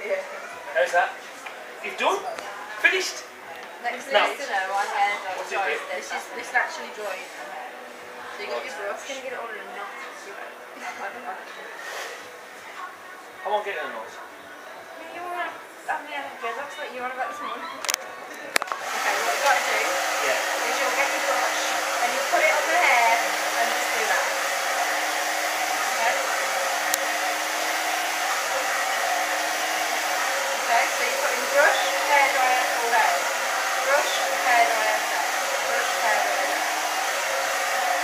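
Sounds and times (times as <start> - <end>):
hair dryer blowing: 18.6 - 38.0.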